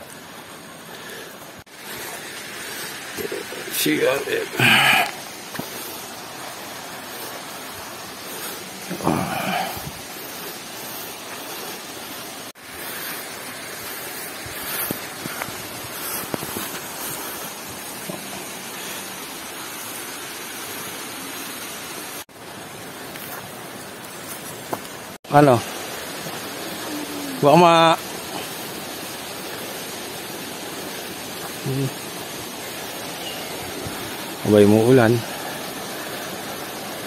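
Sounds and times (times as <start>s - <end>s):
water rushing: 0.0s - 37.0s
person's voice: 3.2s - 5.2s, 26.8s - 28.0s, 31.6s - 32.0s.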